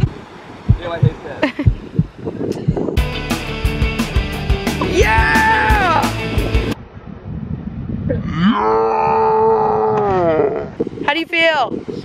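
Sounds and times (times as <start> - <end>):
man yelling: 4.8 - 6.2.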